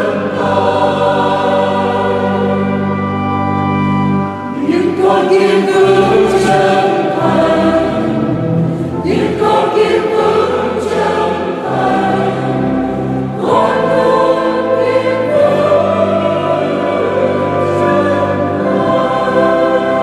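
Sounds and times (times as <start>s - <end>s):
mixed choir singing a hymn: 0.0s - 20.0s.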